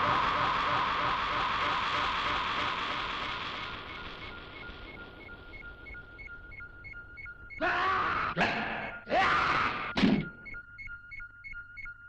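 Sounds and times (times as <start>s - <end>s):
alternating high beeps: 0.3s - 7.7s, 9.8s - 12.0s
loud falling cry: 7.6s - 10.4s.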